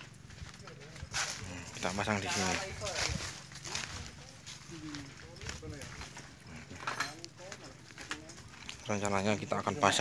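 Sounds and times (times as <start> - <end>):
people talking quietly: 0.0 - 10.0.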